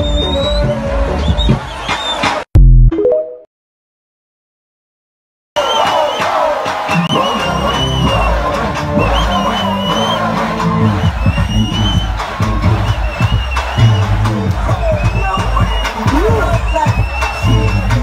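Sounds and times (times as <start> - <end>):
large crowd cheering: 0.0 - 2.5, 5.6 - 18.0
loud music with heavy bass beat: 5.8 - 18.0.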